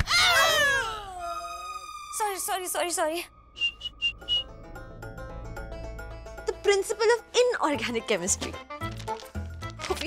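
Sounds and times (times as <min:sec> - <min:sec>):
whistling sliding notes: 0:03.5 - 0:04.6.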